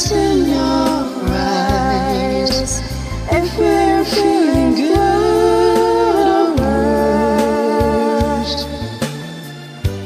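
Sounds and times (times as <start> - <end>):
person singing long wordless note: 0.0 - 9.0
karaoke backing track: 0.0 - 10.0.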